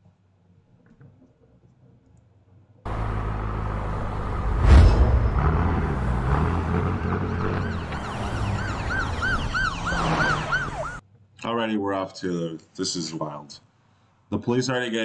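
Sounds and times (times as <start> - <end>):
heavy hit: 4.4 - 6.1
police siren yelping: 6.9 - 11.0.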